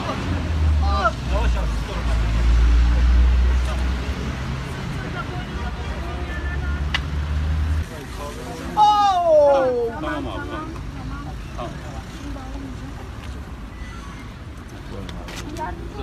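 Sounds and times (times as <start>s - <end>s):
bystanders murmuring: 0.0s - 16.0s
road traffic rumble: 0.0s - 16.0s.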